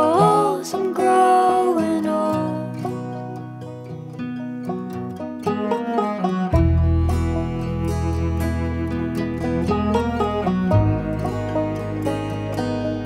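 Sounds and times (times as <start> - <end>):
banjo picking: 0.0 - 13.0
held string notes: 0.0 - 13.0
low bowed cello: 5.3 - 13.0.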